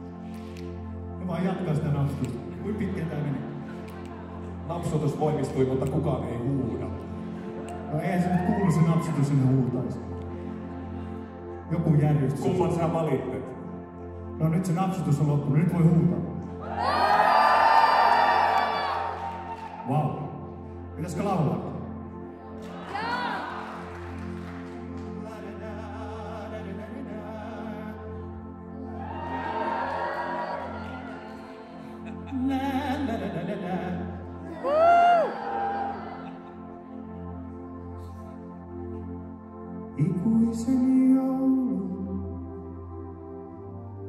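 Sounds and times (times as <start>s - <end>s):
high-pitched scream: 16.7s - 19.9s, 29.0s - 31.7s, 34.5s - 36.5s
crowd noise: 28.9s - 32.2s.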